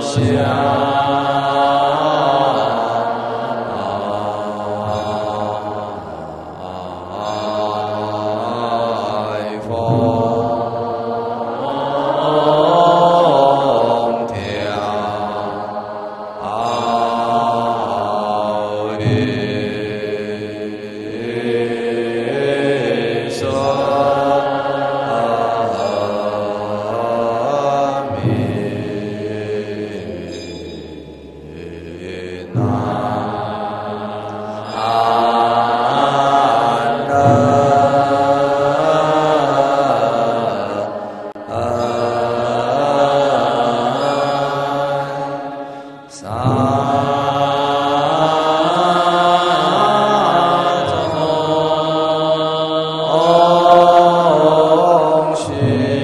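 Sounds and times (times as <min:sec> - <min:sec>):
monks chanting in unison: 0:00.0 - 0:56.0.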